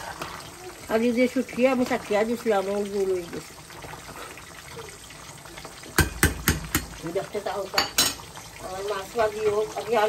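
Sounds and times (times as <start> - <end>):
curry simmering hiss: 0.0 - 10.0
metal spoon knocking on pot: 6.0 - 7.0, 7.8 - 8.2.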